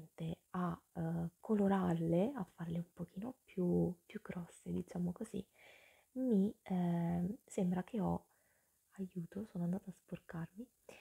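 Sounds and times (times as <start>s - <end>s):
woman speaking softly: 0.0s - 5.5s, 6.2s - 8.2s, 9.0s - 11.0s.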